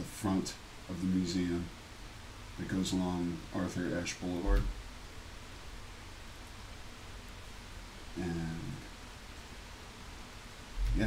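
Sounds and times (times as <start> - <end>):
faint steady hiss: 0.0 - 11.0
low hum: 0.0 - 11.0.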